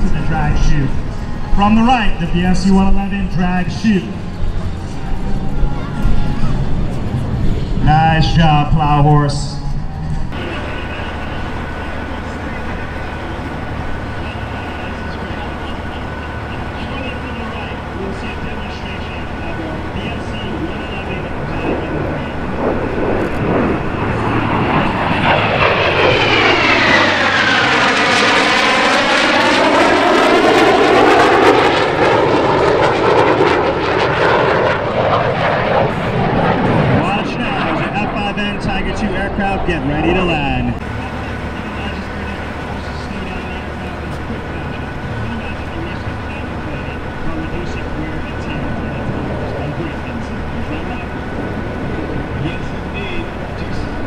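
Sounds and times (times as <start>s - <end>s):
jet fighters flying past: 0.0s - 54.0s
whooshing jet whine: 0.0s - 54.0s.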